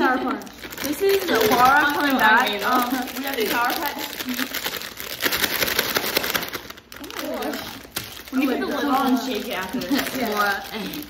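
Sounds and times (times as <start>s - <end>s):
girls talking and laughing: 0.0s - 6.2s, 6.8s - 11.0s
plastic bags crinkling: 0.0s - 11.0s.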